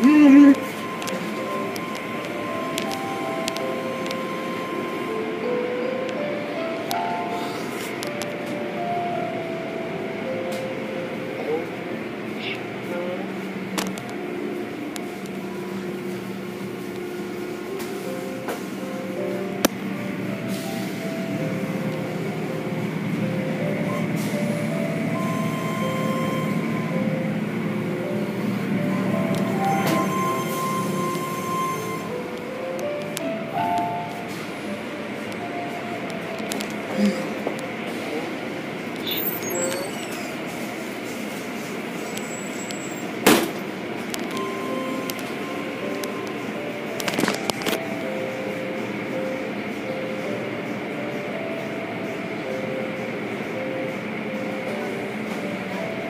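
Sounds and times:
simple background music melody: 0:00.0 - 0:11.6, 0:17.0 - 0:38.0, 0:43.9 - 0:56.0.

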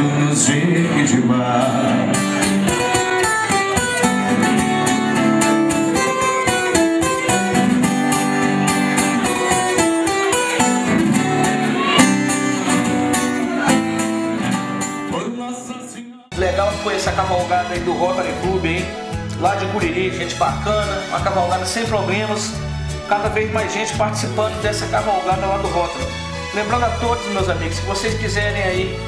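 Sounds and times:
acoustic guitar playing: 0:00.0 - 0:15.4, 0:16.3 - 0:29.0.

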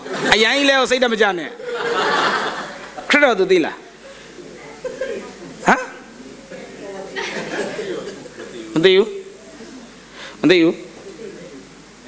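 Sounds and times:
faint murmuring: 0:03.8 - 0:12.0.

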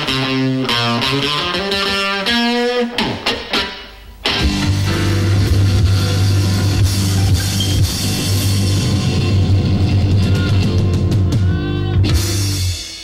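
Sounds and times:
electric blues band playing: 0:00.0 - 0:13.0
electric guitar: 0:00.0 - 0:13.0
drum kit: 0:02.9 - 0:13.0
bass line: 0:04.4 - 0:12.8.

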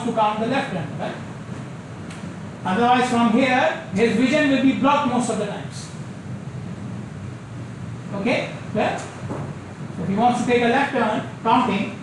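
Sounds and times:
low rushing background noise: 0:00.0 - 0:12.0.

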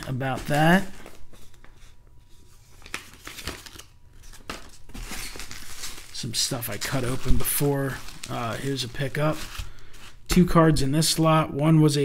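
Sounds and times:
bubble wrap crinkling and rustling: 0:02.4 - 0:10.3.

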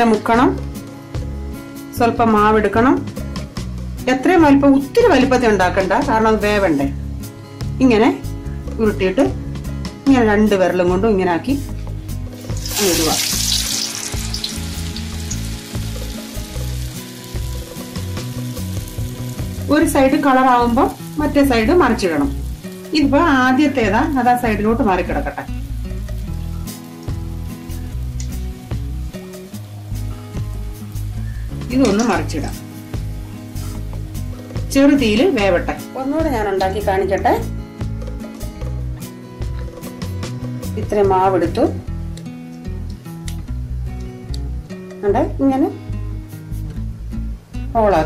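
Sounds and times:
food deep-frying in oil: 0:12.3 - 0:37.2.

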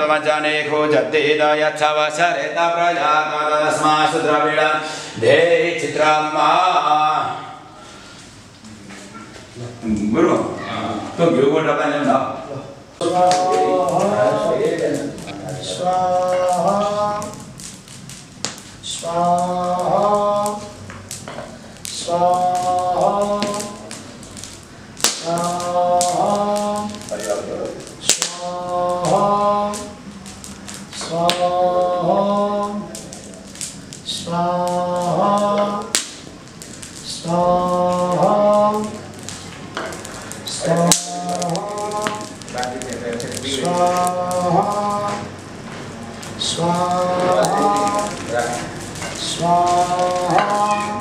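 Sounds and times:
man chanting a mantra: 0:13.0 - 0:17.5, 0:18.8 - 0:20.8, 0:21.9 - 0:24.0, 0:25.2 - 0:30.1, 0:30.8 - 0:36.0, 0:37.0 - 0:39.2, 0:40.1 - 0:45.4, 0:46.4 - 0:51.0.

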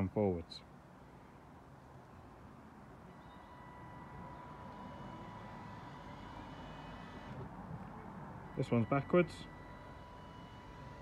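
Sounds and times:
electric motor whine: 0:03.1 - 0:07.5, 0:09.0 - 0:11.0.

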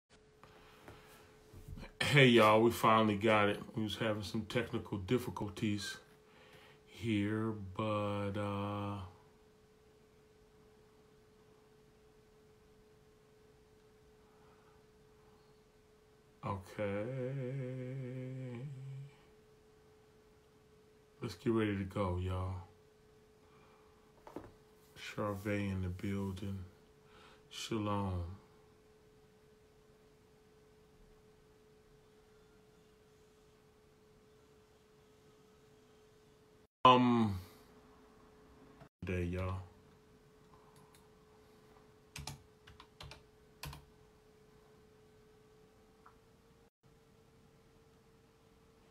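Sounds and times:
faint steady tone: 0:02.0 - 0:24.2, 0:25.0 - 0:42.0.

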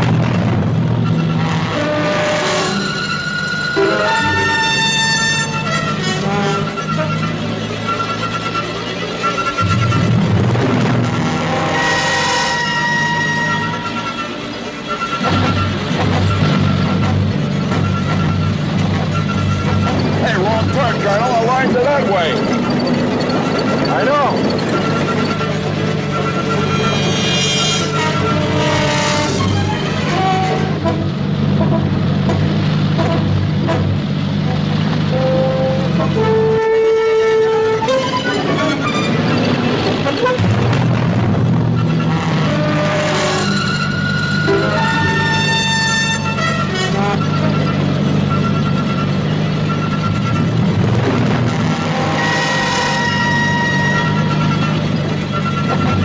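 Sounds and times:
dramatic orchestral score: 0:00.0 - 0:56.0
jeep engine running: 0:03.7 - 0:12.0, 0:12.8 - 0:56.0.

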